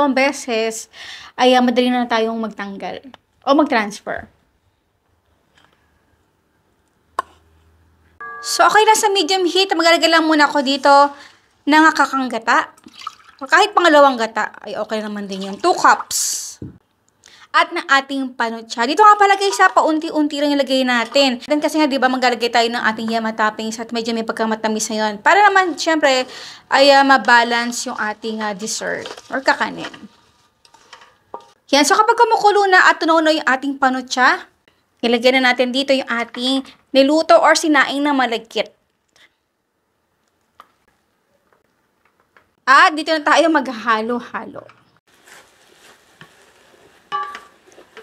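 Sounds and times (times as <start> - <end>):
woman speaking: 0.0 - 4.3, 8.4 - 12.8, 13.4 - 16.8, 17.6 - 30.1, 31.7 - 38.8, 42.6 - 44.8
wooden spatula knocking metal pot: 29.1 - 31.6, 47.1 - 48.0
utensil clinking against a pan: 47.1 - 48.0.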